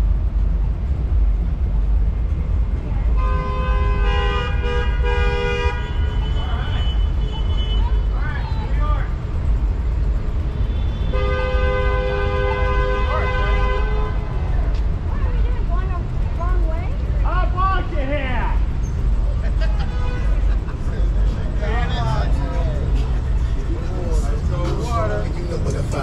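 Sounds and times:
city traffic rumble: 0.0 - 26.0
people talking indistinctly: 5.7 - 11.1, 12.6 - 26.0.

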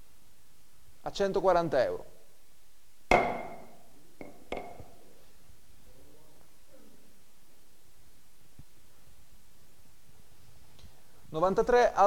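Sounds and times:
gavel knocks: 3.1 - 4.9.

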